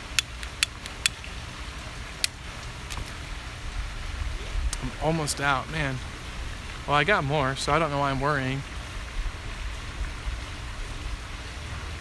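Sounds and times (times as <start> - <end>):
lighter clicks and pipe pops: 0.0 - 1.2
low steady rumble: 0.0 - 12.0.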